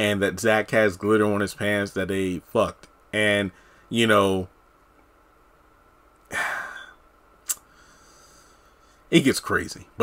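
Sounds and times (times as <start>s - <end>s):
man sighing: 6.3s - 7.0s.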